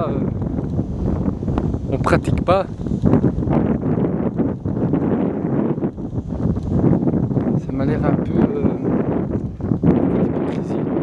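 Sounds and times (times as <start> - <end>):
wind on microphone: 0.0 - 11.0.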